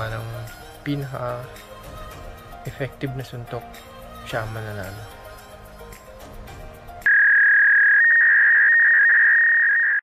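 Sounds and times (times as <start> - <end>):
faint background music: 0.0 - 7.1
high-pitched electronic tone: 7.1 - 10.0.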